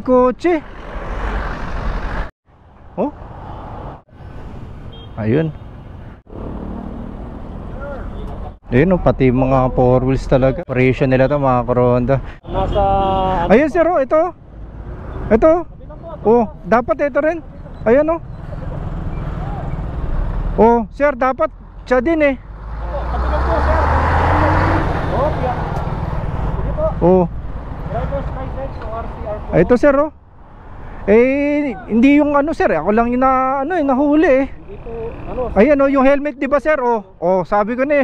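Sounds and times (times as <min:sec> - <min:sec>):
vehicle passing: 0:00.5 - 0:10.6, 0:11.7 - 0:20.8, 0:21.5 - 0:33.4, 0:34.2 - 0:36.2
car driving past: 0:00.6 - 0:04.8, 0:06.2 - 0:08.6, 0:22.4 - 0:29.5.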